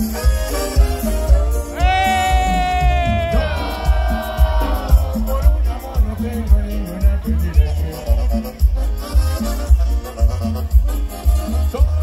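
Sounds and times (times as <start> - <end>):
live band with heavy bass beat: 0.0 - 12.0.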